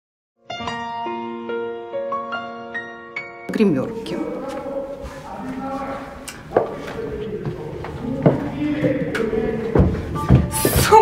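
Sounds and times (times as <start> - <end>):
indistinct echoing voices: 3.5 - 11.0.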